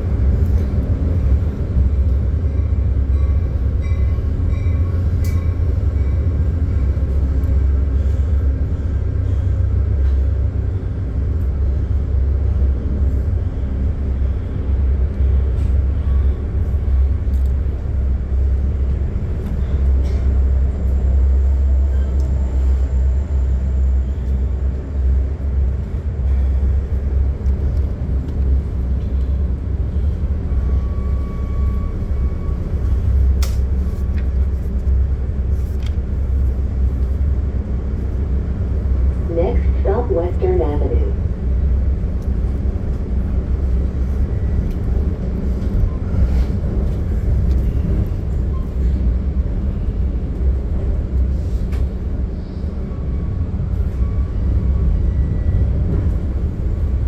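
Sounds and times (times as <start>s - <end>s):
train car rumbling on track: 0.0s - 57.0s.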